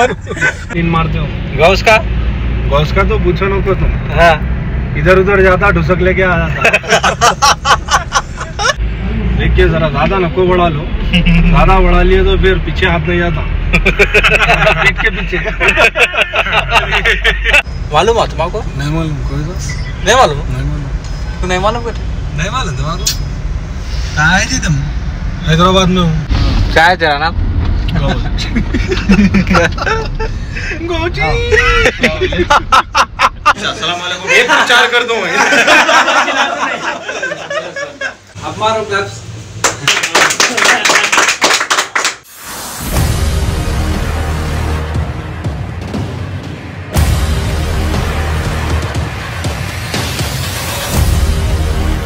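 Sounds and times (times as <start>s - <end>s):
men laughing: 0.0s - 0.8s, 6.4s - 8.8s, 13.6s - 17.7s, 27.9s - 38.3s
people clapping: 39.6s - 42.3s
rising swell of noise: 42.2s - 52.0s
music: 42.9s - 52.0s.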